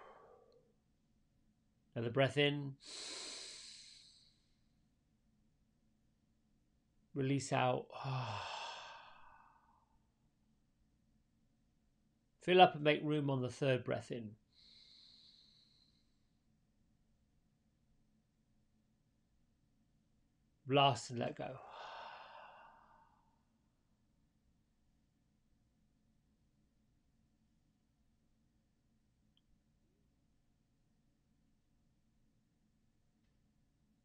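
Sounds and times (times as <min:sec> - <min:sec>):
man breathing out slowly: 0:00.0 - 0:00.6, 0:02.8 - 0:04.6, 0:08.0 - 0:10.0, 0:14.6 - 0:16.2, 0:21.6 - 0:23.4
man exhaling deeply: 0:00.0 - 0:00.6, 0:02.8 - 0:04.4, 0:07.9 - 0:09.9, 0:21.6 - 0:23.4.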